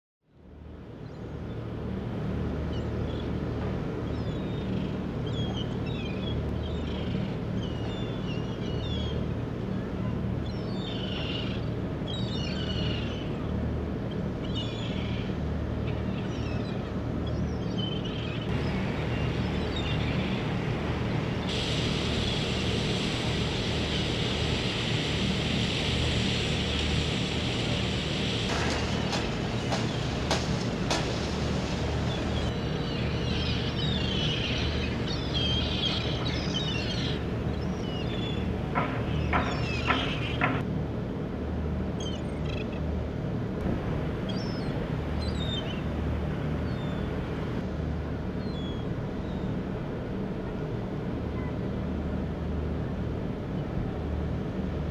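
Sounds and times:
boat engine hum: 0.4 - 54.9
gulls calling: 1.5 - 40.6, 43.6 - 51.8
steady hiss: 18.5 - 40.6.

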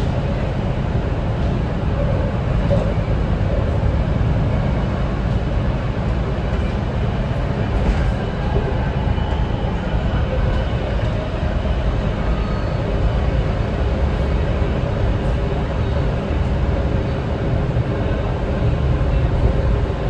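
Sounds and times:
train wheels rumbling: 0.0 - 20.0.

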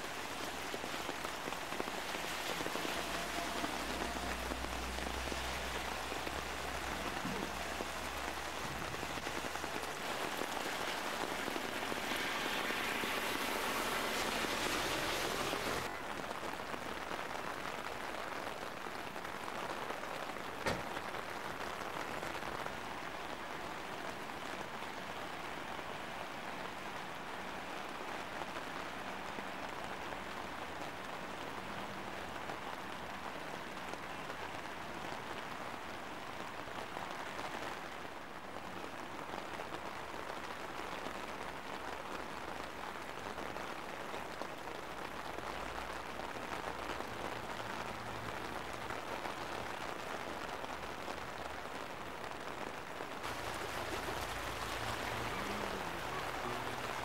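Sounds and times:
rain hissing: 0.0 - 24.3, 38.6 - 57.0
rushing floodwater: 0.0 - 57.0.

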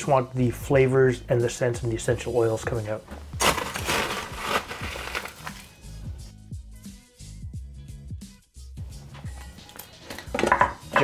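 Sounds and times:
background music: 0.0 - 11.0
crushed ice crunching into glass: 3.4 - 5.8.

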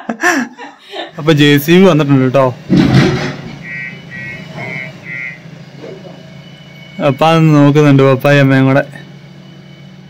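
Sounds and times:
diesel engine running: 1.0 - 10.0
reversing alarm beeps: 3.6 - 10.0.

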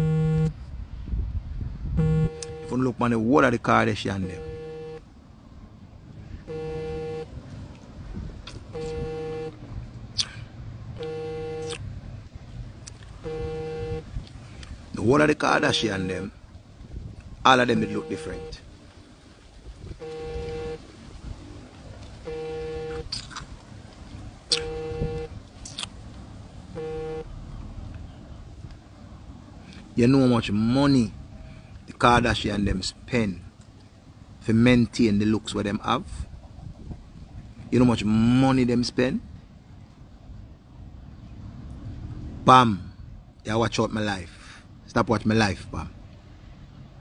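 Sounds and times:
low outdoor rumble: 0.0 - 47.0
horn toot: 2.0 - 2.8, 4.2 - 5.0, 6.5 - 7.3, 8.7 - 9.6, 11.0 - 11.8, 13.2 - 14.1, 15.3 - 16.3, 17.5 - 18.6, 20.0 - 20.8, 22.2 - 23.1, 24.5 - 25.3, 26.8 - 27.3.

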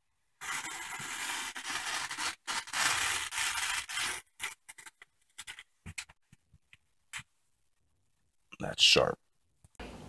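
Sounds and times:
knife slicing through paper: 0.4 - 4.8
paper crinkling: 0.4 - 6.3.

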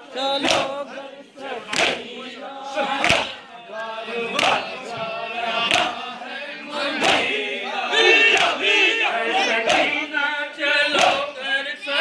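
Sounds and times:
crowd of men chanting: 0.0 - 12.0.

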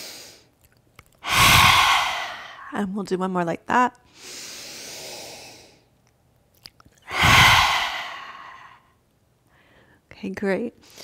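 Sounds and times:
forceful open-mouthed exhale: 1.2 - 2.8, 7.1 - 8.9
woman inhaling: 1.2 - 2.8, 7.1 - 10.0.

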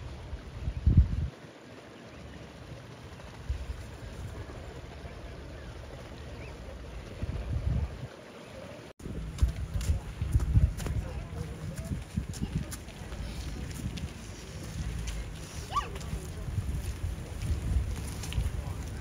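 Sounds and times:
wind buffeting microphone: 0.0 - 1.4, 2.8 - 8.2, 9.0 - 19.0
low outdoor noise: 0.0 - 19.0.

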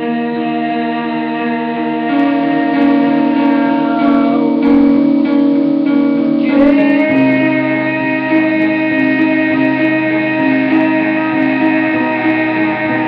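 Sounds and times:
electric guitar through amplifier: 0.0 - 13.0.

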